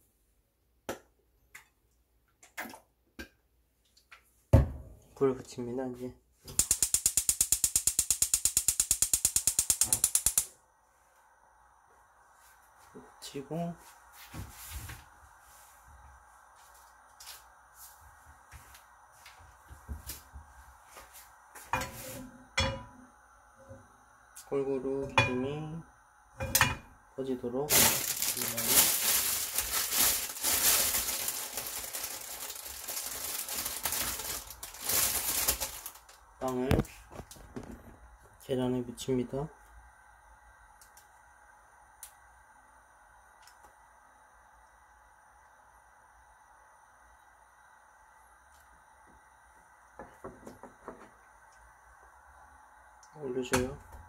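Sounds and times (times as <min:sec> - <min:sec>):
gas flame hissing: 0:06.4 - 0:54.0
spark igniter clicking: 0:06.5 - 0:10.6
oil crackling in a frying pan: 0:27.7 - 0:36.2.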